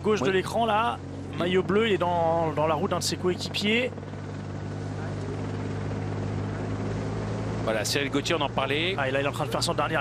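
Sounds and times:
low mechanical motor drone: 0:00.0 - 0:10.0
road and wind noise: 0:00.0 - 0:10.0.

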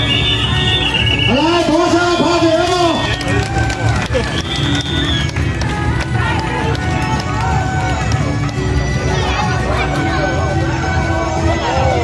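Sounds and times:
dense crowd voices: 0:00.0 - 0:12.0
loud procession music: 0:00.0 - 0:12.0.

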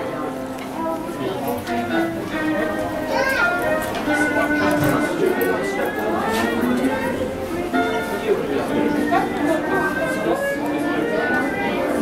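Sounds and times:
background music: 0:00.0 - 0:12.0
chatter of shoppers: 0:00.0 - 0:12.0
child's voice: 0:03.0 - 0:05.0.

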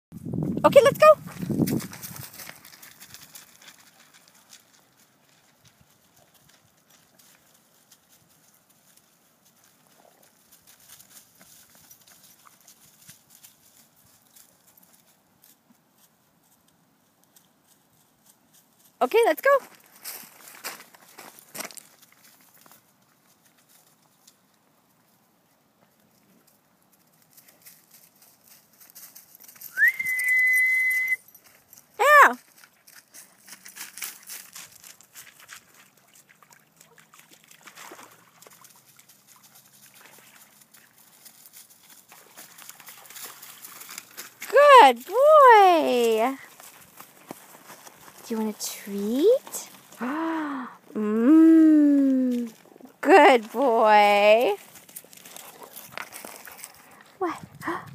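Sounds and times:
footsteps on gravel: 0:01.2 - 0:05.4, 0:19.4 - 0:22.8, 0:40.0 - 0:50.3, 0:52.3 - 0:57.9
person whistling: 0:29.7 - 0:31.2
short high swooping call: 0:29.7 - 0:31.2
faint rustling: 0:40.6 - 0:50.4, 0:52.0 - 0:57.9.

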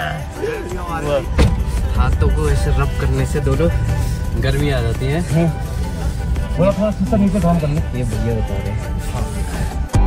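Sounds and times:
voices: 0:00.0 - 0:09.9
music: 0:00.0 - 0:10.0.

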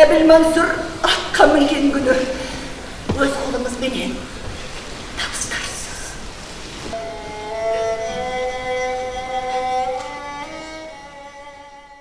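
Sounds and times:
low theatre noise: 0:00.0 - 0:12.0
bowed string music: 0:06.9 - 0:12.0.

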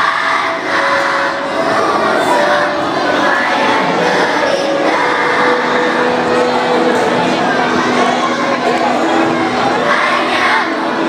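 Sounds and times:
audience noise: 0:00.0 - 0:11.0
children's choir singing: 0:00.0 - 0:11.0.

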